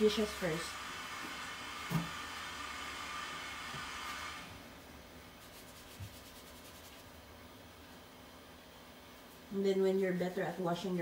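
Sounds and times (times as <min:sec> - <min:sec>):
tap water running into sink: 0:01.1 - 0:04.1.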